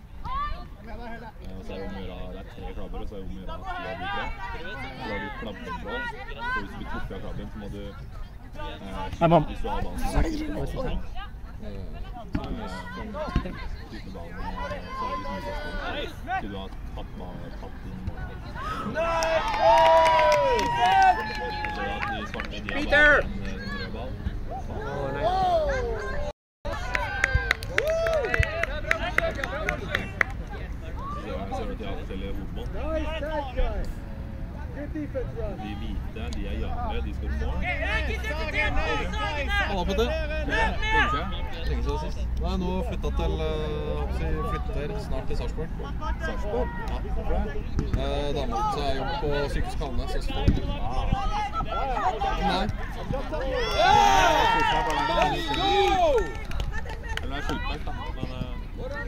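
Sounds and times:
players shouting: 12.1s - 16.5s, 18.1s - 31.6s, 37.2s - 41.6s, 45.7s - 59.0s.

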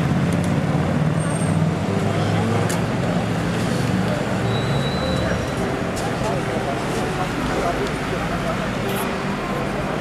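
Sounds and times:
bus engine running: 0.0s - 10.0s
street traffic: 0.0s - 10.0s
passers-by talking: 1.8s - 10.0s.

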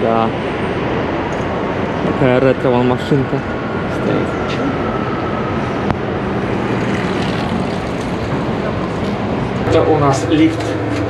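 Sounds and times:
city street traffic: 0.0s - 11.0s.

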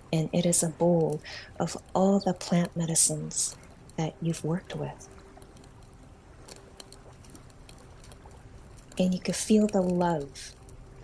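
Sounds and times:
campfire crackling: 0.0s - 11.0s
faint steady tone: 0.0s - 11.0s.

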